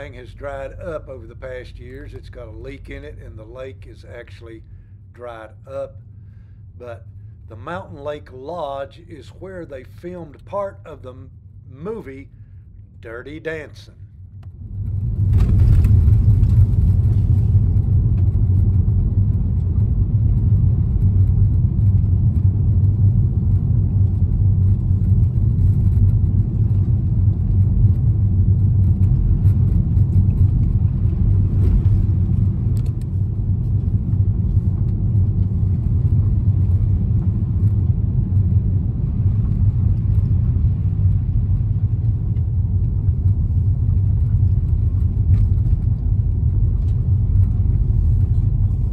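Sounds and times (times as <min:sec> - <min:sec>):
car interior road rumble: 0:14.4 - 0:48.9.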